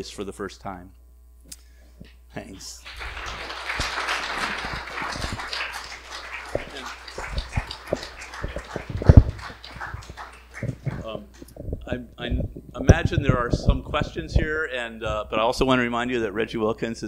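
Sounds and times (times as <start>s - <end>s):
audience applauding: 2.8s - 11.6s.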